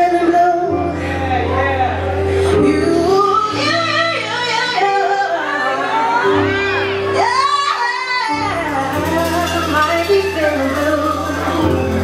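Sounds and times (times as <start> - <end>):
held backing chord: 0.0 - 12.0
woman singing: 0.0 - 12.0.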